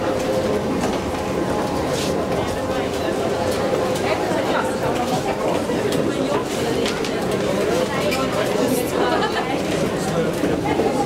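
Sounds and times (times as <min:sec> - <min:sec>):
escalator mechanical hum: 0:00.0 - 0:11.0.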